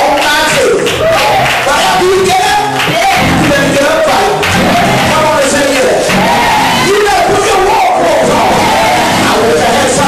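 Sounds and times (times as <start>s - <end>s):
bass guitar: 0.0s - 10.0s
congregation shouting and singing: 0.0s - 10.0s.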